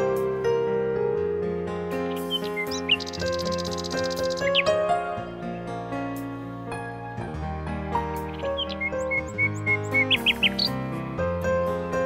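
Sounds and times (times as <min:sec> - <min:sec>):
instrumental music in held chords: 0:00.0 - 0:12.0
nightingale singing: 0:02.0 - 0:05.0, 0:08.1 - 0:10.9.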